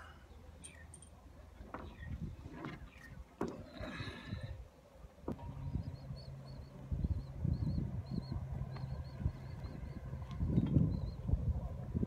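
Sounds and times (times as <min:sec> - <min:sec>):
steady low hum: 0:00.0 - 0:12.0
wind buffeting microphone: 0:01.8 - 0:03.3, 0:05.3 - 0:12.0.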